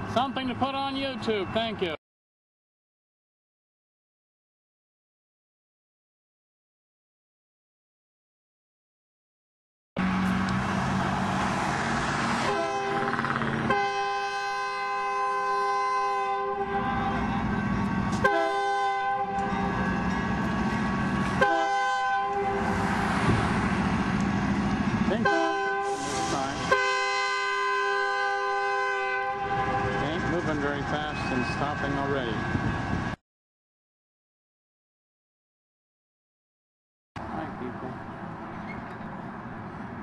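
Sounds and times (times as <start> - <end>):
low rumble of moving train: 0.0 - 2.0, 10.0 - 33.2, 37.2 - 40.0
locomotive air horn blasts: 12.4 - 20.0, 21.3 - 23.0, 25.1 - 31.7.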